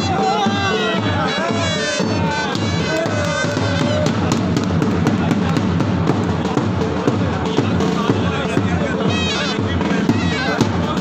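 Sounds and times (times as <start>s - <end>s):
music with fast drumbeat: 0.0s - 11.0s.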